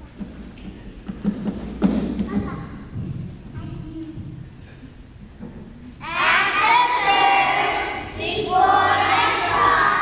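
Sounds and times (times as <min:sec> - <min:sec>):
children's voices: 0:02.2 - 0:04.4, 0:06.0 - 0:10.0.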